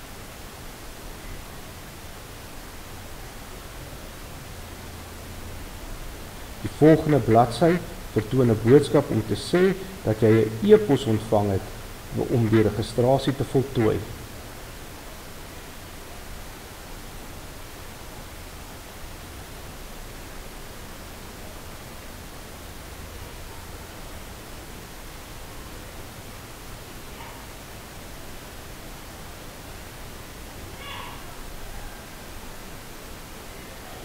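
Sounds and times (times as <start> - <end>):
microphone hiss: 0.0 - 34.0.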